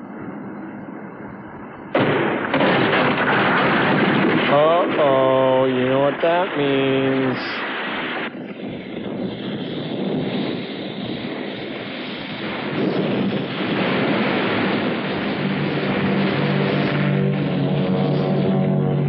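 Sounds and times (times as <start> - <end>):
noisy unpitched rumble: 0.0 - 19.0.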